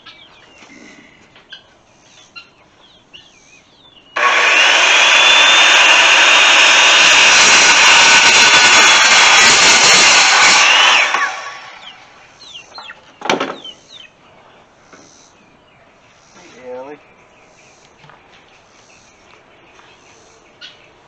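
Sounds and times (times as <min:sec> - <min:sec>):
circular saw cutting wood: 0:04.2 - 0:12.2.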